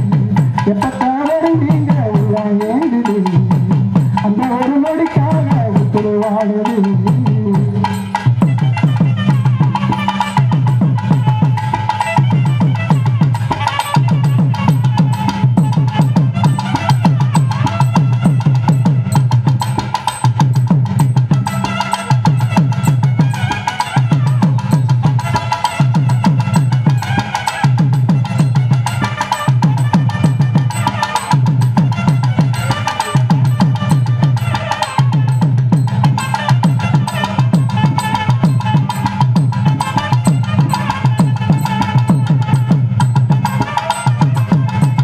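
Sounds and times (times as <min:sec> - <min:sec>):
barrel drum beating: 0:00.0 - 0:45.0
wind instrument melody: 0:00.0 - 0:45.0.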